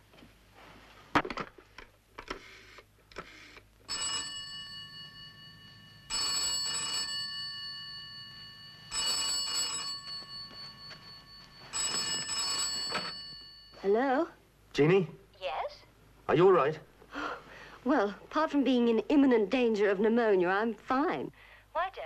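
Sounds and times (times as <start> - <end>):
telephone bell ringing: 3.9 - 14.1.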